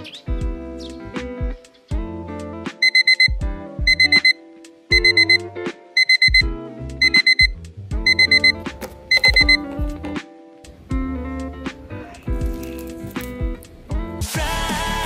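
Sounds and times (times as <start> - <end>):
background music with plucked notes: 0.0 - 15.0
digital alarm beeping: 2.8 - 9.7.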